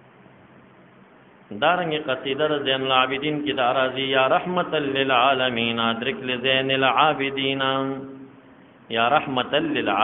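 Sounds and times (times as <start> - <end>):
man chanting melodically: 1.5 - 10.0.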